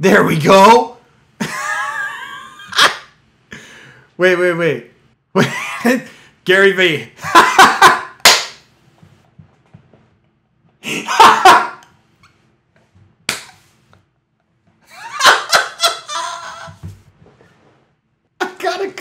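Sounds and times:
sharp crack: 8.2 - 8.7, 13.3 - 13.6.

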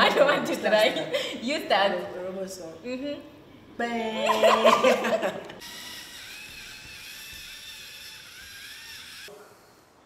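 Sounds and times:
small electric motors whining: 5.6 - 9.3.

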